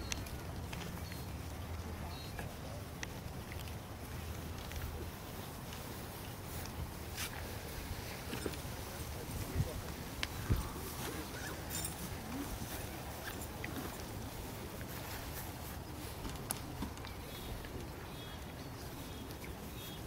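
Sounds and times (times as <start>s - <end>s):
faint spectator chatter: 0.4s - 20.0s.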